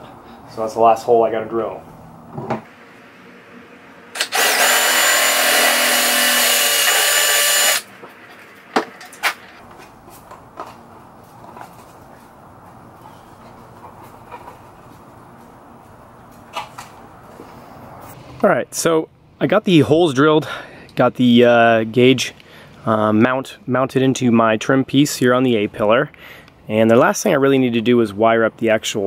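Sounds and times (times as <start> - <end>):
cordless drill boring plastic: 4.2 - 7.8.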